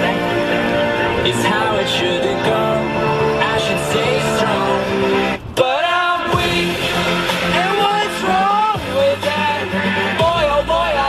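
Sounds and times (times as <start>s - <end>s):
pop song playing: 0.0s - 11.0s
voices singing along: 0.0s - 11.0s.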